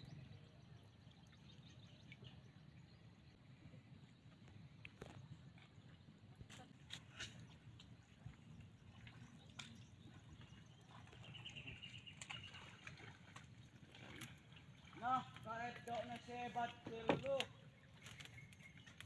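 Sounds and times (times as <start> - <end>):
faint outdoor ambience over water: 0.0 - 19.0.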